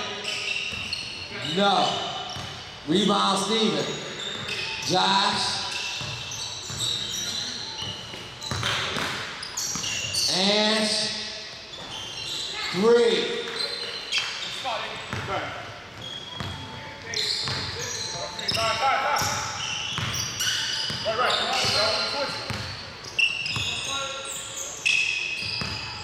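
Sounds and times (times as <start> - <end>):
sneaker squeaks: 0.0 - 26.0.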